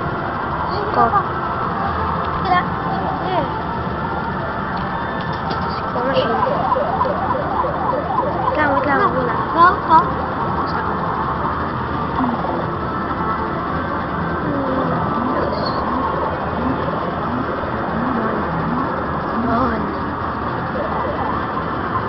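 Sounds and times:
voices: 0:00.0 - 0:22.0.

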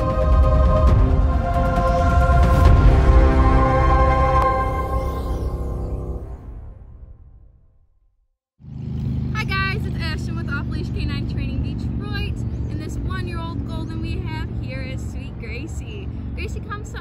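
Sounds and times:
low rumble of road traffic: 0:08.6 - 0:17.0
birds chirping: 0:08.8 - 0:17.0.

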